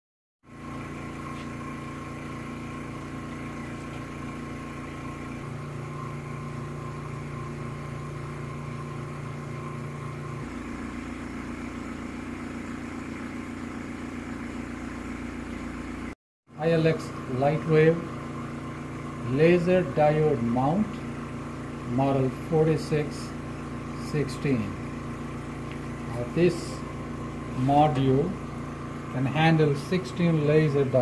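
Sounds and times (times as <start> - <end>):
low pulsing mechanical hum: 0.5 - 31.0.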